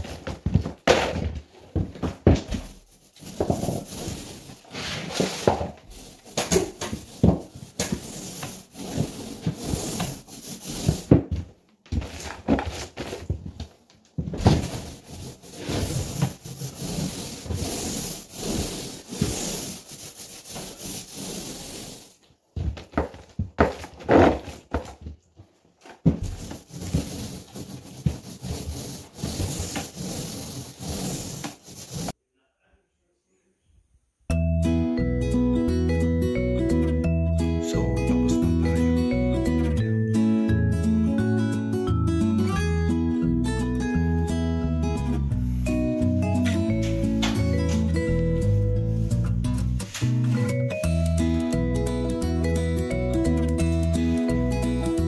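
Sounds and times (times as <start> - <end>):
paint roller rolling over drywall: 0.0 - 13.4, 14.2 - 25.0, 25.8 - 32.2.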